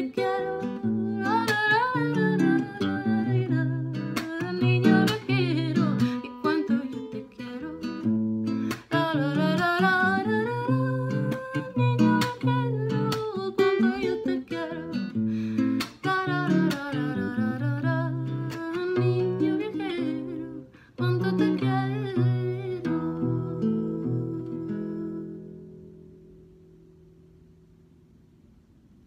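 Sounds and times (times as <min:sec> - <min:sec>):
woman singing: 0:00.0 - 0:25.7
fingerpicked classical guitar: 0:00.0 - 0:28.1.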